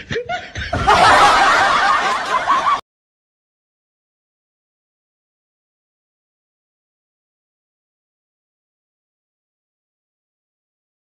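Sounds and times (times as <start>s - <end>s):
loud laughter: 0.0s - 2.8s.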